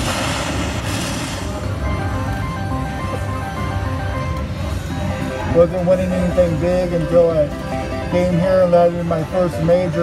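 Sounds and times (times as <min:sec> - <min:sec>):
low background din: 0:00.0 - 0:10.0
slot machine electronic notes: 0:01.7 - 0:10.0.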